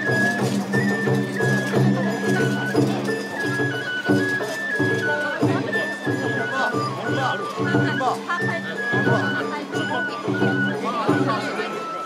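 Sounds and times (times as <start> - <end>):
rhythmic drumming: 0.0 - 11.8
bamboo flute high melody: 0.0 - 12.0.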